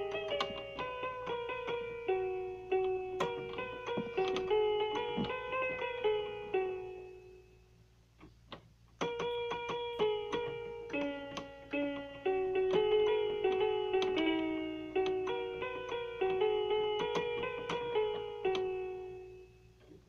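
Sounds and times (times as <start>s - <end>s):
electronic keyboard melody: 0.0s - 20.0s.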